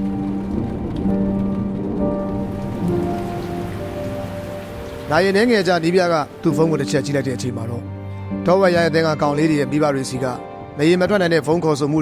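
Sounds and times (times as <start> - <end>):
steady rain falling: 0.0 - 8.2
music of long held notes: 0.0 - 12.0.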